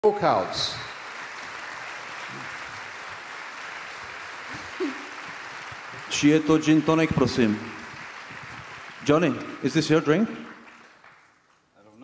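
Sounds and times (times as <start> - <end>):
audience applauding: 0.1 - 11.7.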